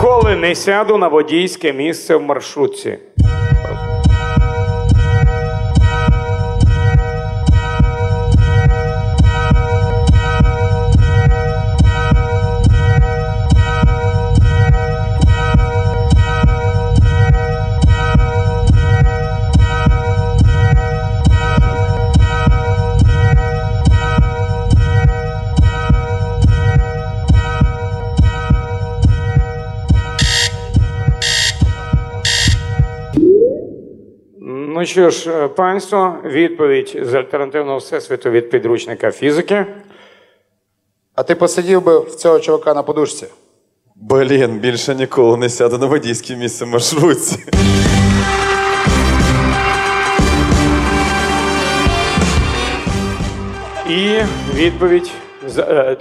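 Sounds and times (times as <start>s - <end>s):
sharp beeps: 30.2s - 34.2s.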